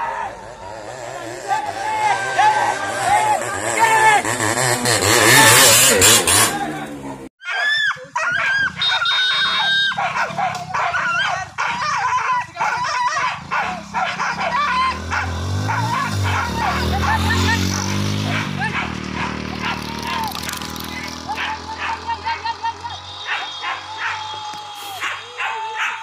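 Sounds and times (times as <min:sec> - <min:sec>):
motorcycle revving: 0:00.0 - 0:07.3, 0:08.7 - 0:25.2
dog yelping and barking: 0:07.4 - 0:17.3, 0:18.3 - 0:20.3, 0:23.2 - 0:24.2, 0:25.0 - 0:26.0
low motorcycle engine hum: 0:09.6 - 0:24.8.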